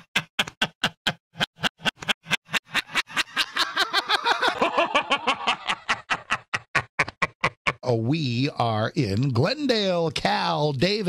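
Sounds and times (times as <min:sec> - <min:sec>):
man laughing hard: 0:00.0 - 0:07.8.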